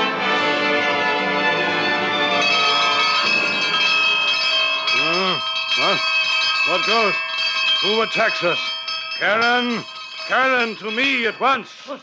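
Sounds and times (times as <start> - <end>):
orchestral brass music: 0.0 - 3.9
bells ringing: 2.2 - 12.0.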